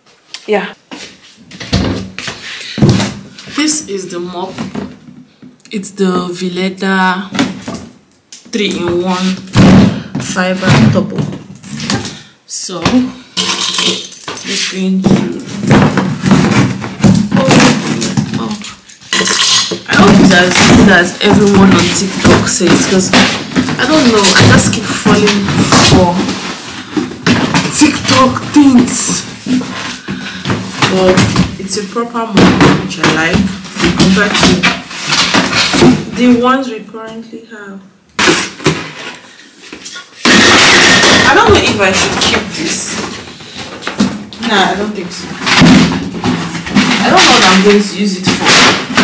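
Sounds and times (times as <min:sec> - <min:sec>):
mop parts thumping and clattering: 0:01.5 - 0:03.6, 0:08.6 - 0:12.2, 0:12.8 - 0:37.2, 0:38.2 - 0:49.0.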